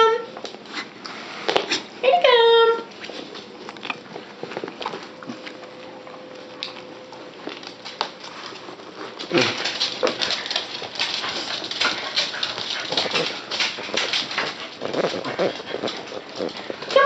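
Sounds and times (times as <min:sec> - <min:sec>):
dog claws clicking on wooden floor: 0:06.5 - 0:17.0.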